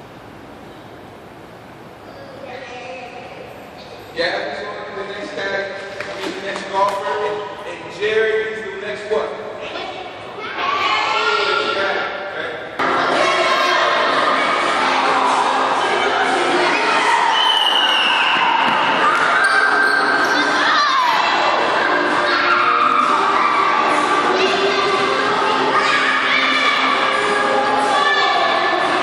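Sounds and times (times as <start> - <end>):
voices echoing in a gym: 0.0 - 29.0.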